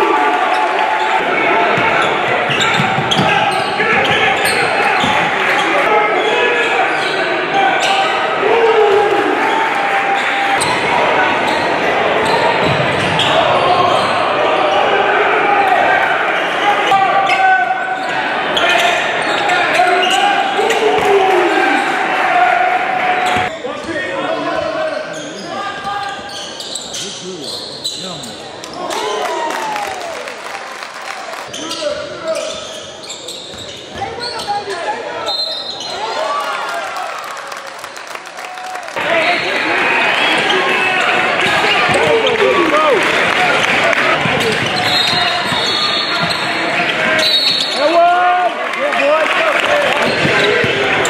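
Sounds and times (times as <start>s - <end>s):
spectators' voices: 0.0s - 51.0s
shoe squeaks on court: 24.9s - 28.4s, 31.5s - 36.0s, 44.4s - 47.8s.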